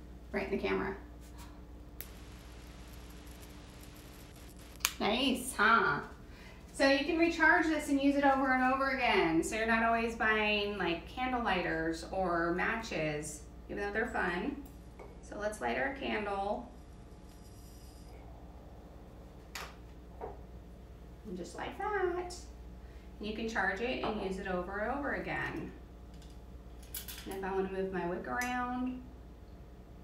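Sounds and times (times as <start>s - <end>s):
low steady hum: 0.0s - 30.0s
arc lighter crackling hiss: 2.0s - 5.4s.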